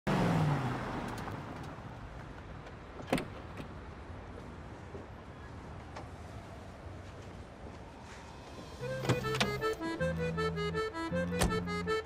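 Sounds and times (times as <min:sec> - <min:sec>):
car pulling up: 0:00.1 - 0:02.0, 0:07.9 - 0:12.0.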